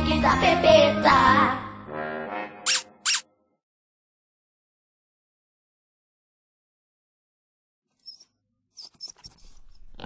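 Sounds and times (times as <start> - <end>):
cartoon theme song: 0.0 - 3.4
high-pitched squeak effects: 2.6 - 3.3.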